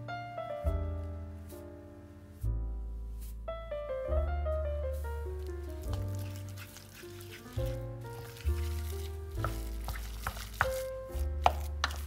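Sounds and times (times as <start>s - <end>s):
background music: 0.0s - 12.0s
wooden spoon knocking a saucepan: 5.9s - 12.0s.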